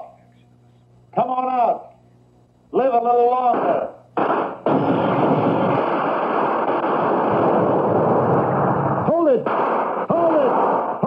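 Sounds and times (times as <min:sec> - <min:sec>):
massed gunfire: 0:03.5 - 0:11.0.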